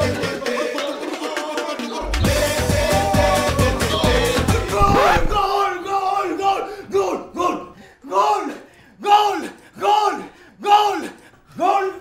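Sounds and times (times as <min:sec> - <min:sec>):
football fans chanting: 0:00.0 - 0:05.7.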